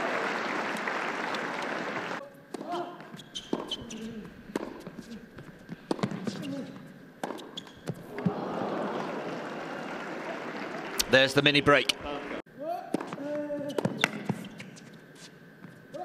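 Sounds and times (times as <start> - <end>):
crowd applause: 0.0 - 2.2, 8.1 - 12.4.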